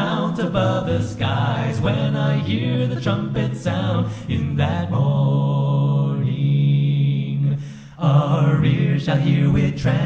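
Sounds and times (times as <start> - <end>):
voices singing a hymn: 0.0 - 10.0.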